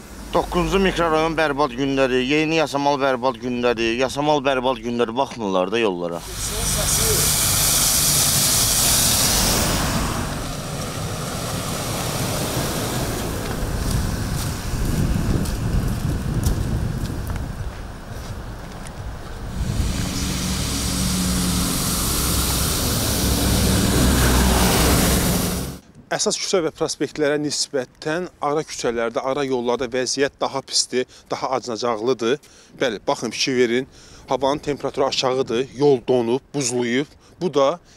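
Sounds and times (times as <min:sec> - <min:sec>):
tyres on frozen snowy road: 0:00.0 - 0:02.7, 0:06.2 - 0:25.8
bus engine idling: 0:06.2 - 0:14.8, 0:17.9 - 0:25.8
footsteps crunching on ice: 0:13.2 - 0:19.4.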